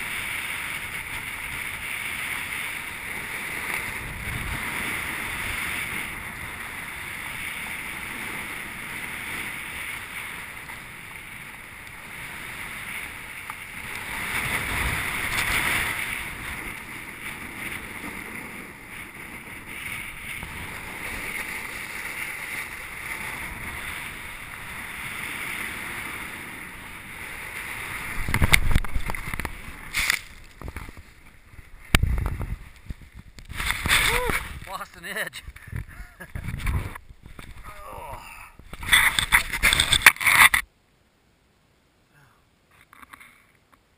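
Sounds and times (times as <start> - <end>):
snowboard sliding over snow: 0.0 - 40.7
wind buffeting microphone: 0.8 - 34.8, 35.4 - 40.6.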